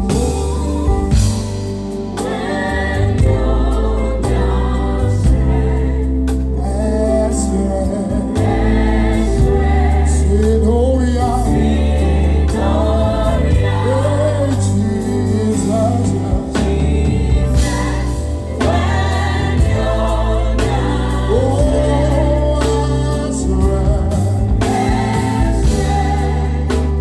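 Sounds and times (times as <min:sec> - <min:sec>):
drums: 0:00.0 - 0:27.0
heavy bass: 0:00.0 - 0:27.0
keyboards: 0:00.0 - 0:27.0.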